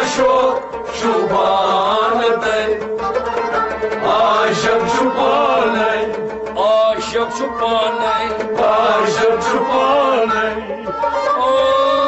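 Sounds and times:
men singing held wavering notes: 0:00.0 - 0:12.0
plucked stringed instrument: 0:00.0 - 0:12.0.

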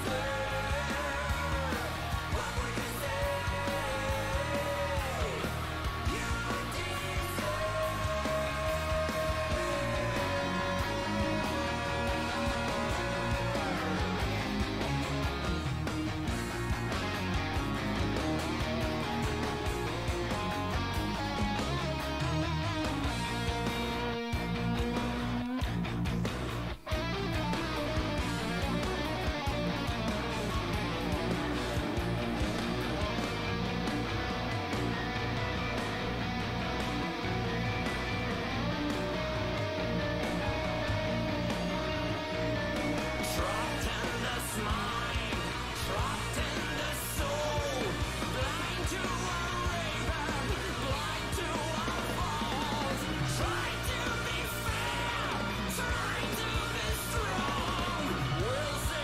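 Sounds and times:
progressive rock song: 0:00.0 - 0:59.0.

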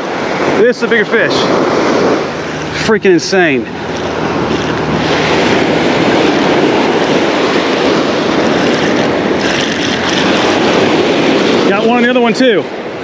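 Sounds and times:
surf breaking: 0:00.0 - 0:13.0
wind on microphone: 0:00.0 - 0:13.0.

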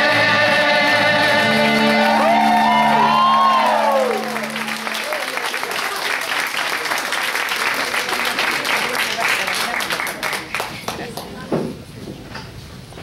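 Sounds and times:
low held sung chord: 0:00.0 - 0:05.7
congregation applauding: 0:01.2 - 0:11.4.

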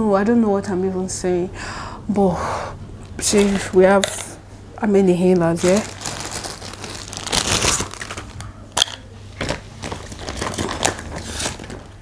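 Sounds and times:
plastic bag crinkling: 0:05.4 - 0:12.0.

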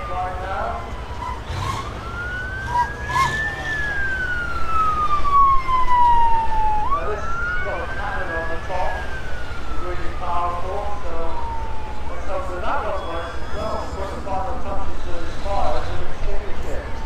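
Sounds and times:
emergency vehicle siren wailing: 0:00.0 - 0:17.0.

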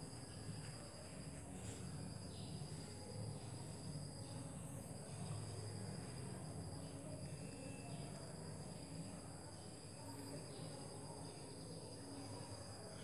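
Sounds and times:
crickets chirring: 0:00.0 - 0:13.0
faint low hum: 0:00.0 - 0:13.0.

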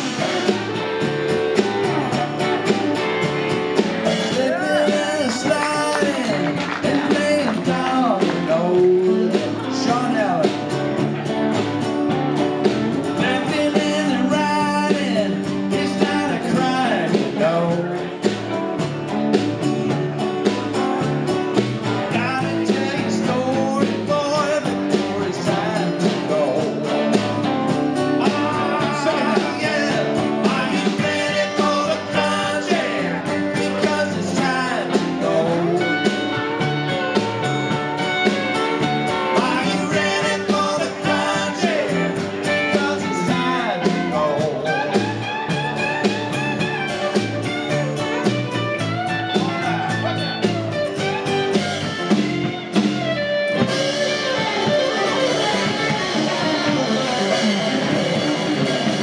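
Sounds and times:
drums: 0:00.0 - 0:59.0
electric bass: 0:00.0 - 0:59.0
electric lead guitar: 0:00.0 - 0:59.0
strummed acoustic guitar: 0:00.0 - 0:59.0
man singing: 0:04.0 - 0:11.3, 0:13.1 - 0:18.5, 0:22.0 - 0:27.2, 0:28.0 - 0:45.3.

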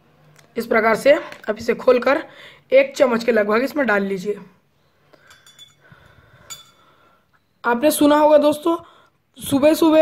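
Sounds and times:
spoon clinking against metal cup: 0:05.2 - 0:07.0.

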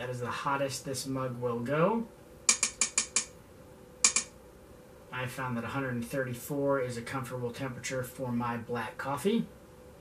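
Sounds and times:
tablet ticking clicks: 0:02.5 - 0:03.4, 0:04.0 - 0:04.3.

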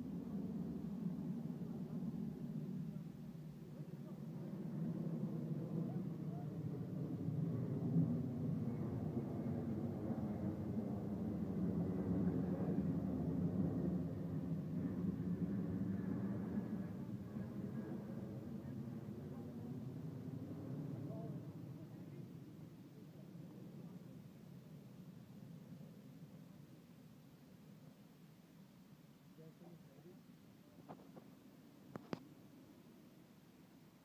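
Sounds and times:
jet engines rumbling overhead: 0:00.0 - 0:34.0.

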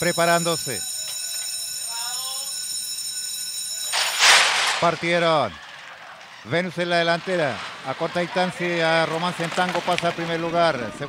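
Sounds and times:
electric bell ringing: 0:00.0 - 0:04.2
horses breaking rushing noise: 0:03.9 - 0:10.4.

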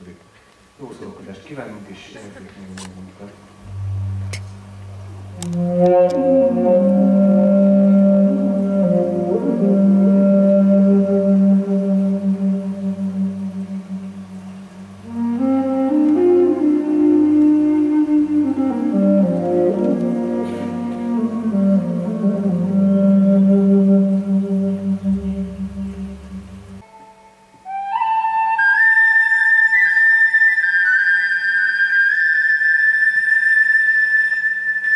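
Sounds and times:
wind instrument low note: 0:03.6 - 0:28.3.

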